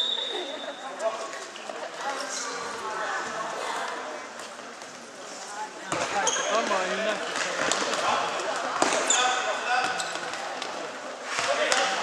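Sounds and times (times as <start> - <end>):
sneakers squeaking on court: 5.9 - 6.8, 8.8 - 10.5.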